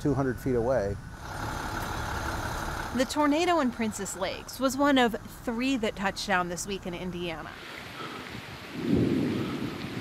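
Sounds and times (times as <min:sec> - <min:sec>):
truck engine idling: 0:00.0 - 0:07.3.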